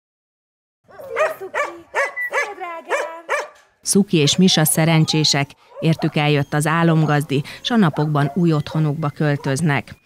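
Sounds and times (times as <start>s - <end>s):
dog barking: 0.9s - 8.5s.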